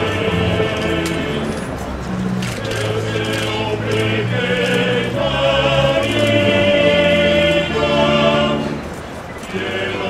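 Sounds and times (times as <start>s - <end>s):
choir singing sacred music: 0.0s - 10.0s.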